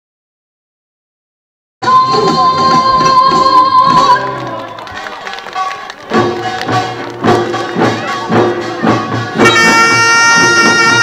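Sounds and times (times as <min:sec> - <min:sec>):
percussion strikes: 0:01.8 - 0:11.0
long held high note: 0:09.4 - 0:11.0.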